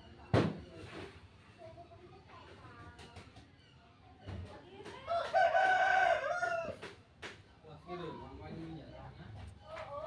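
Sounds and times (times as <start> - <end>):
rooster crowing: 5.3 - 6.8.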